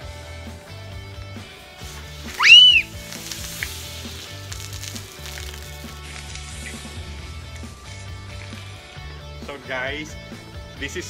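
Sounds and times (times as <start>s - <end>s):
background music: 0.0s - 11.0s
cola fizzing out of bottle: 1.8s - 7.1s
loud high squeal: 2.4s - 2.9s.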